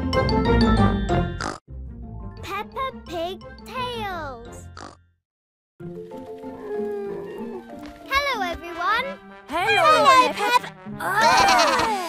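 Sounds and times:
cartoon music: 6.6s - 12.0s
cartoon voices oinking: 10.3s - 12.0s.

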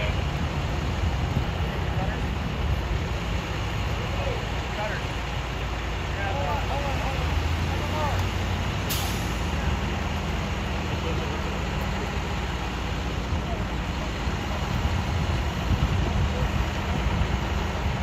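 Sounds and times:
low engine drone: 0.0s - 18.0s
voices talking: 0.0s - 18.0s.

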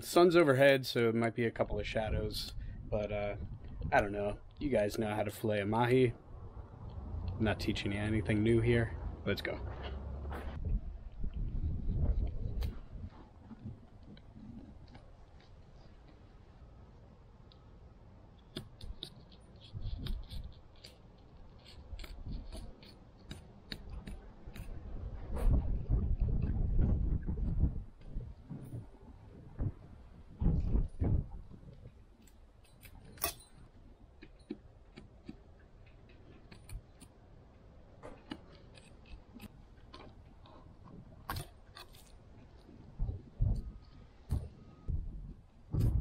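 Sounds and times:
low rumbling noise: 1.6s - 18.3s, 24.1s - 32.2s, 42.2s - 46.0s.

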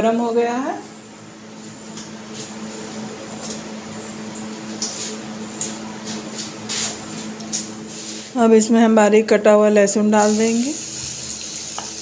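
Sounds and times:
ghee sizzling in a pan: 10.2s - 12.0s.

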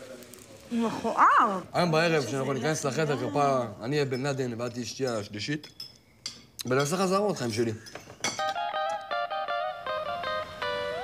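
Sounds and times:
cutlery clinking on plates: 4.0s - 8.6s.

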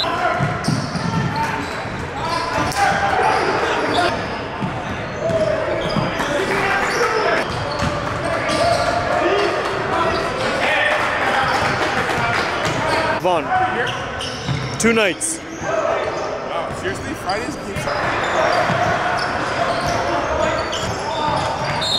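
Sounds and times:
shoe squeaks: 0.0s - 4.4s, 13.8s - 14.8s, 17.8s - 21.9s
players' voices and shouts: 0.0s - 21.9s.

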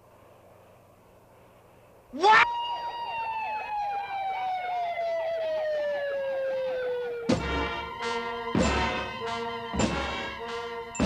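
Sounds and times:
police siren: 2.2s - 11.0s.

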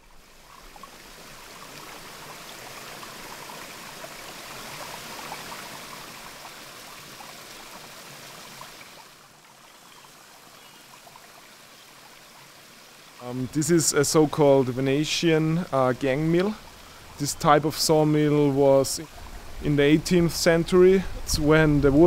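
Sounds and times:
water rushing down wooden flume: 0.0s - 22.0s.

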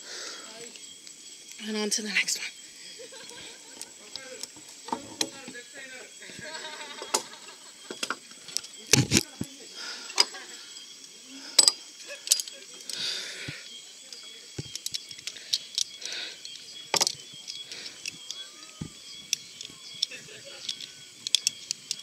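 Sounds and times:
carabiners clinking and knocking: 11.6s - 13.6s, 14.6s - 22.0s.

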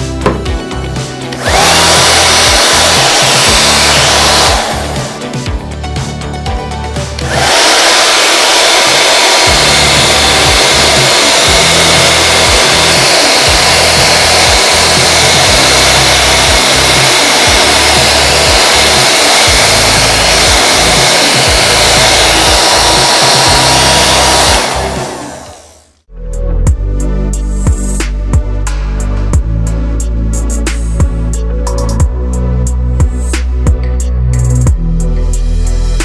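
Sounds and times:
handheld vacuum cleaner whirring: 1.3s - 5.5s, 7.2s - 26.0s.

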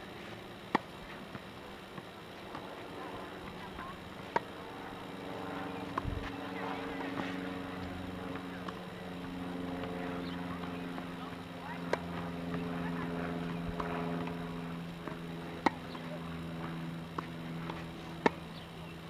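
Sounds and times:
steady low hum: 0.0s - 19.0s
tennis balls struck by rackets: 0.2s - 18.7s
tennis balls bouncing: 0.2s - 18.8s.

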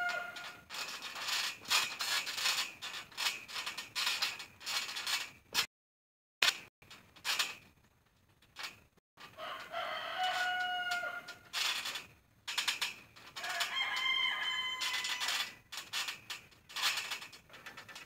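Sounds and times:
rooster crowing: 0.0s - 0.6s, 9.4s - 11.4s, 13.4s - 15.4s
trampoline springs creaking: 0.0s - 5.7s, 6.4s - 18.0s.

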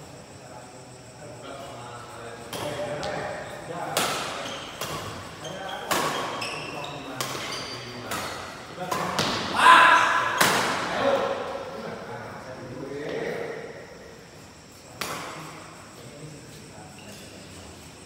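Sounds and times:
shoe squeaks: 3.0s - 8.7s, 16.4s - 18.0s.

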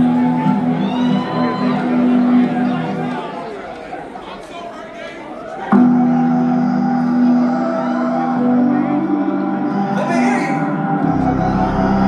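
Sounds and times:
sustained electronic synth chord: 5.7s - 12.0s.

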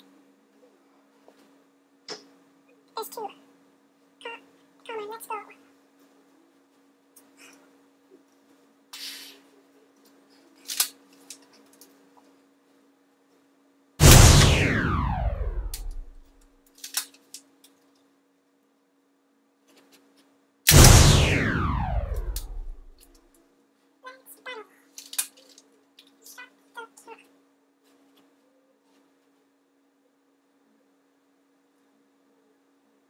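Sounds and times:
toy gun snap and clicks: 10.7s - 11.0s
faint steady hum: 11.6s - 16.4s, 20.7s - 24.9s
sound falling in pitch: 14.0s - 16.2s, 20.7s - 23.0s.

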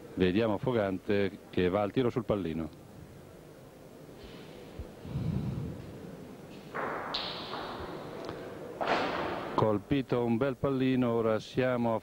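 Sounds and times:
bocce ball knocking ball: 6.7s - 8.1s.

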